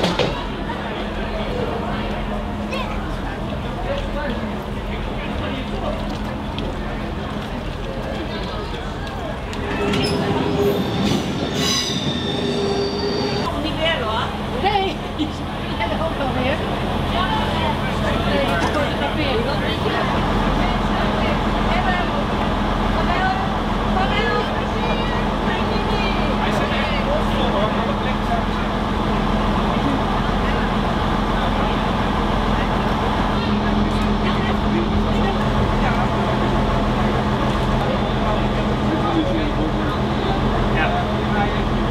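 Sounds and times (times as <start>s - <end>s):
people talking: 0.0s - 11.6s, 13.2s - 41.9s
train rumble: 0.0s - 41.9s
train wheels squealing: 9.7s - 13.5s.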